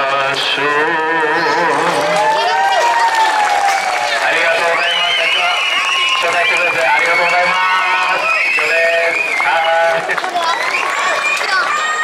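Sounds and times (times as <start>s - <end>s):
audience voices: 0.0s - 12.0s
man talking over microphone: 4.2s - 5.6s, 6.2s - 10.4s.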